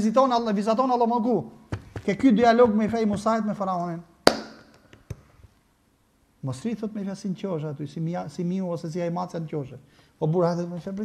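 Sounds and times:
sharp hand clap: 4.3s - 5.2s.

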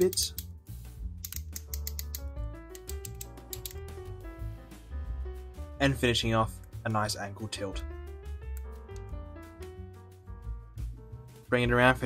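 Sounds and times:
background music: 0.0s - 12.0s
toy ratchet joints clicking: 1.2s - 2.2s, 2.8s - 3.8s.

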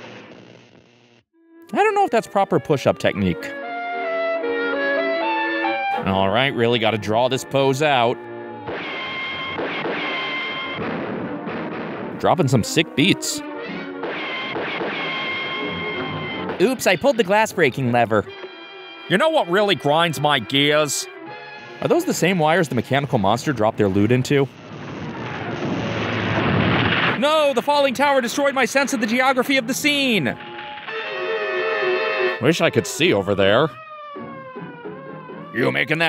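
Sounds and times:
cartoon music score: 1.5s - 24.4s, 27.2s - 36.0s
cartoon explosion and crash: 8.7s - 17.1s, 24.0s - 29.2s.

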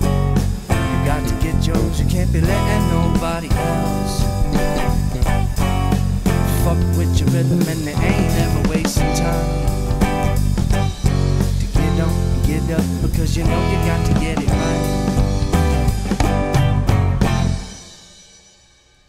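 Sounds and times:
rock band playing: 0.0s - 18.3s.

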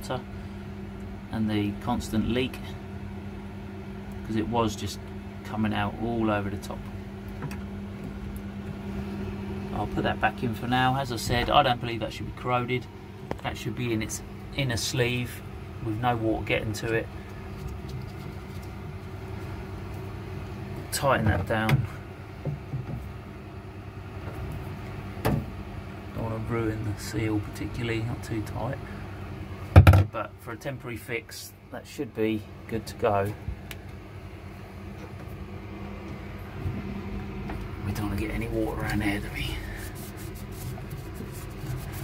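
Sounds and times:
low mechanical hum: 0.0s - 42.0s.

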